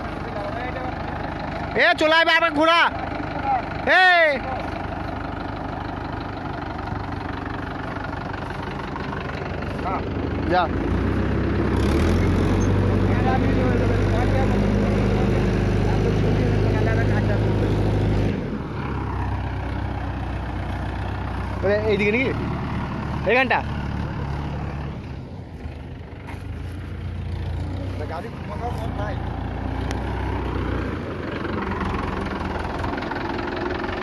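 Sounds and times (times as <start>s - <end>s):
tractor diesel engine straining: 0.0s - 34.0s.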